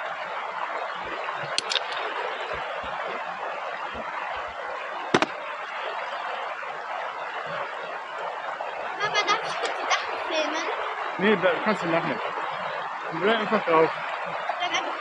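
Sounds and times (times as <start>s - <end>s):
stream rushing over gravel: 0.0s - 15.0s
clicks of gear being handled: 1.6s - 2.0s.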